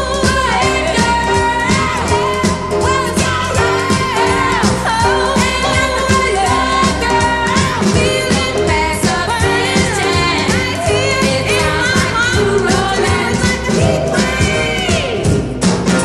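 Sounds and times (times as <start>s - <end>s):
pop band with steady drum beat: 0.0s - 16.0s.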